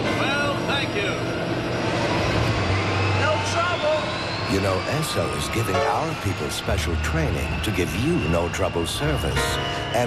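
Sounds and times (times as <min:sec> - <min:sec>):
thin whine rising in pitch: 0:00.0 - 0:09.6.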